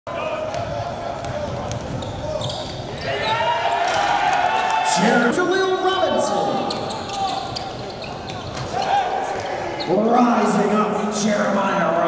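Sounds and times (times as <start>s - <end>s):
voices in a gym: 0.1s - 12.0s.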